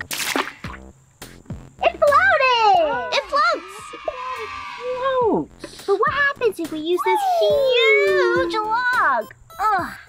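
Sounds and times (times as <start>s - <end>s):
stick splashing into water: 0.0s - 0.8s
light background music: 0.0s - 10.0s.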